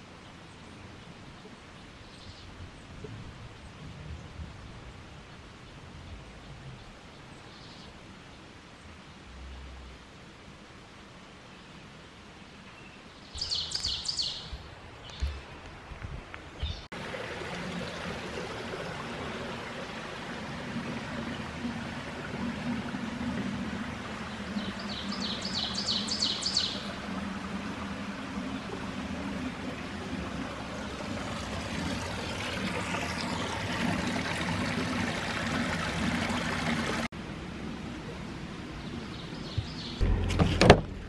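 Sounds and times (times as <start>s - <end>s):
running water rushing: 13.4s - 41.0s.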